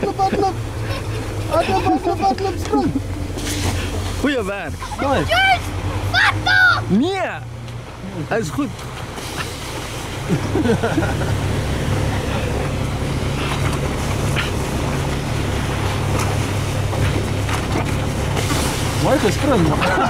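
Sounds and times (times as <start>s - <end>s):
vehicle engine humming: 0.0s - 20.0s
children's voices: 4.7s - 7.0s.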